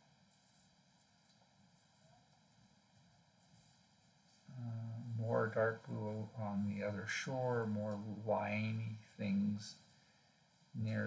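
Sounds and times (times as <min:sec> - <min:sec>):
man's voice: 0:04.5 - 0:09.8, 0:10.8 - 0:11.0.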